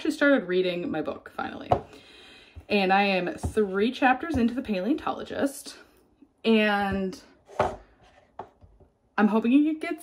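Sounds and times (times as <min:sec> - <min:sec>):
scrape on kitchen counter: 0:07.4 - 0:08.6.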